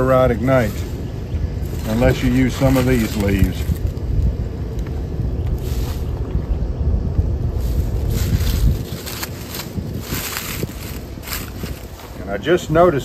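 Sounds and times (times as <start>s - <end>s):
dry leaves crinkling: 0.0s - 6.4s, 7.4s - 13.0s
wind buffeting microphone: 0.0s - 13.0s.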